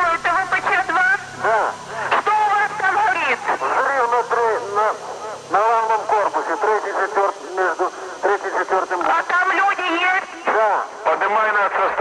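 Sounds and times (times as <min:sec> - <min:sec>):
men talking urgently: 0:00.0 - 0:12.0
radio call: 0:00.0 - 0:12.0.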